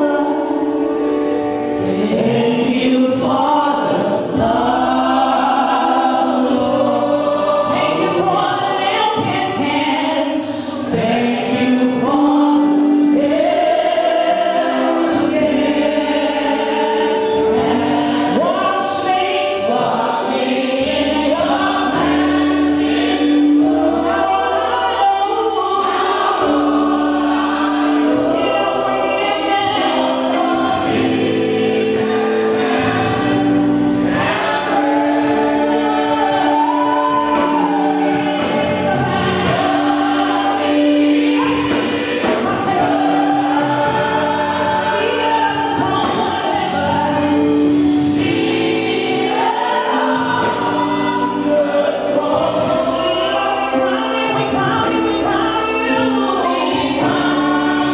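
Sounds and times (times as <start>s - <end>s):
congregation singing worship song: 0.0s - 57.9s.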